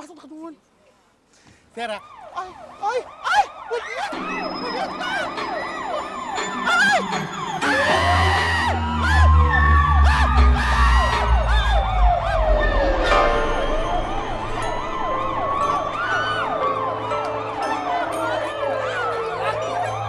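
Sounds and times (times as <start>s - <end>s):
fast sweeping siren: 1.9s - 20.0s
police siren wailing: 1.9s - 20.0s
deep rumble: 9.2s - 16.1s.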